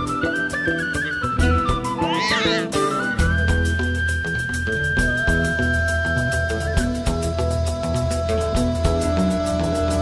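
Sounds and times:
high stepping melody: 0:00.1 - 0:05.5
pulsing low bass notes: 0:01.4 - 0:10.0.

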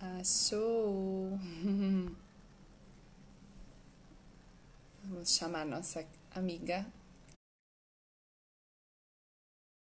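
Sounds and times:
woman humming: 0:01.2 - 0:02.3.

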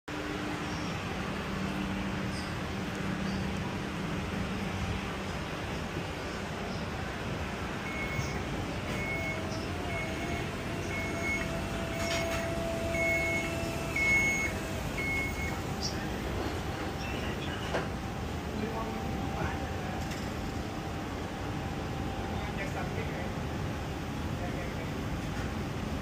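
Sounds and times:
street noise: 0:00.1 - 0:26.0
high electronic warning beeps: 0:07.8 - 0:22.7.

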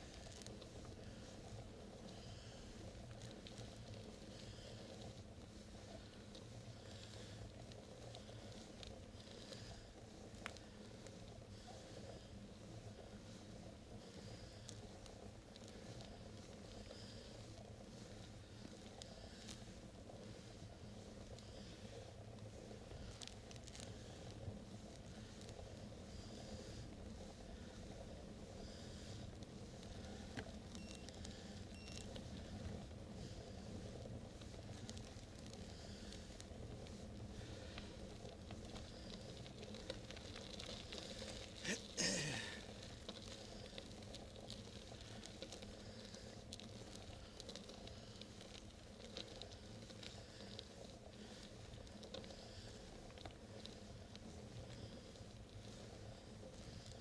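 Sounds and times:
bicycle tyre and wind noise: 0:00.0 - 0:57.0
small ticks: 0:00.0 - 0:57.0.

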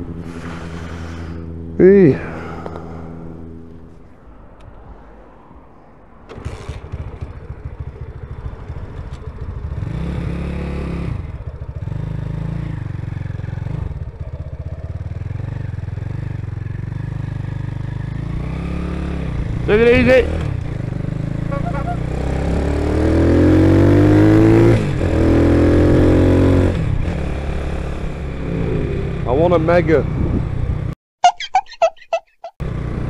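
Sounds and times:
wind and road noise: 0:00.0 - 0:33.0
motorcycle engine revving: 0:06.3 - 0:30.9.

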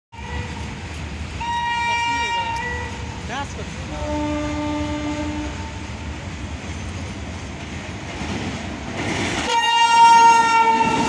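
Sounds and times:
railway car horn: 0:00.1 - 0:00.8, 0:01.4 - 0:03.2, 0:03.9 - 0:05.9, 0:09.4 - 0:11.0.

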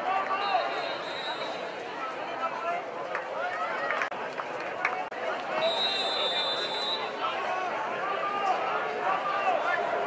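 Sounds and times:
people shouting and chattering: 0:00.0 - 0:10.0.

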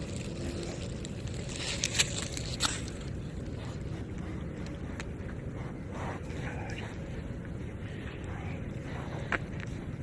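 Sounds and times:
wind rumble: 0:00.0 - 0:10.0.

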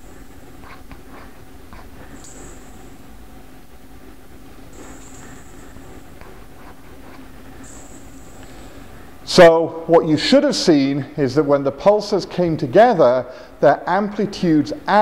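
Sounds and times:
metal spring rattling on tiled floor: 0:02.1 - 0:02.8.

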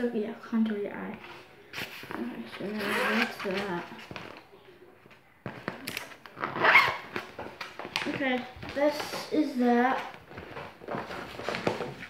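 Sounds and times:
zipper pull: 0:01.8 - 0:03.6, 0:06.4 - 0:07.1
makeup bag rustling: 0:10.0 - 0:12.0.

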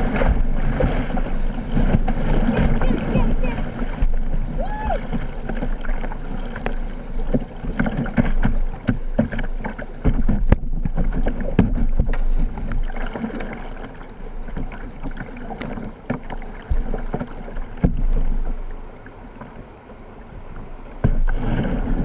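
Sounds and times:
paddle splashes and knocks: 0:00.0 - 0:19.7, 0:20.3 - 0:22.0
water slapping boat: 0:00.0 - 0:22.0
whitewater rapids rushing: 0:01.7 - 0:05.2.

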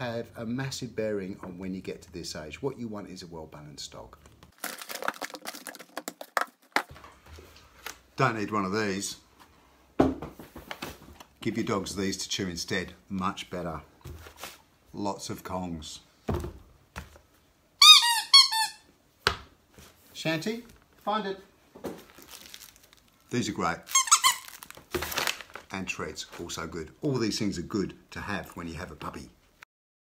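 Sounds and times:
squeaky dog toy squeaking: 0:17.8 - 0:18.9, 0:23.9 - 0:24.7.

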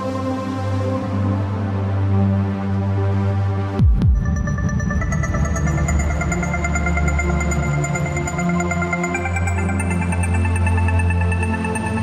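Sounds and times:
low bass: 0:03.6 - 0:08.5.

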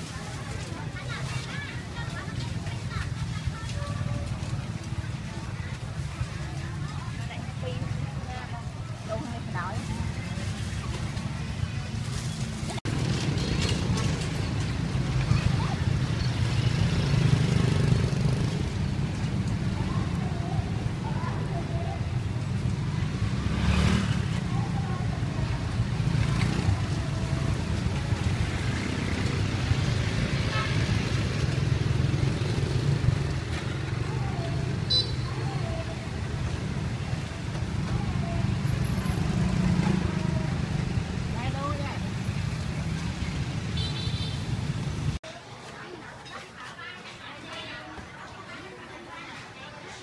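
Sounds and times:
people's voices: 0:00.0 - 0:43.6, 0:45.3 - 0:50.0
passing road vehicles rumble: 0:00.0 - 0:45.3.

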